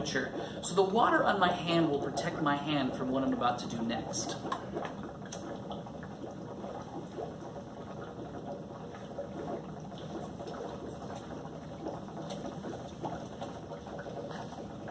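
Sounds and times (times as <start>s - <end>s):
gas bubbling through soapy water: 0.0s - 14.9s.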